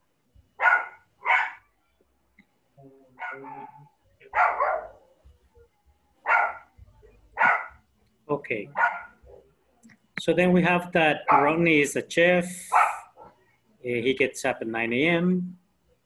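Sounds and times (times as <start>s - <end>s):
dog barking: 0.6s - 1.7s, 3.2s - 5.0s, 6.2s - 6.7s, 7.4s - 7.8s, 8.7s - 9.4s, 11.2s - 11.6s, 12.7s - 13.4s.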